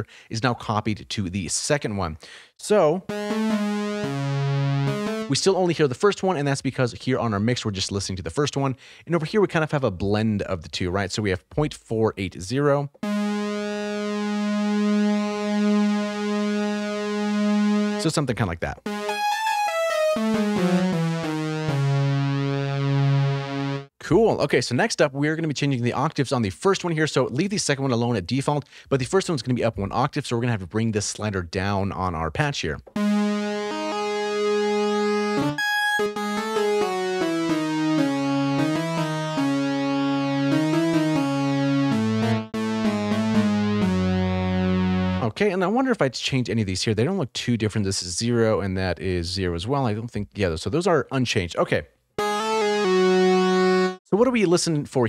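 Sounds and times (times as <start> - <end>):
synthesizer lead melody: 3.0 - 5.7, 13.0 - 18.2, 18.8 - 24.0, 32.9 - 45.3, 52.2 - 54.0.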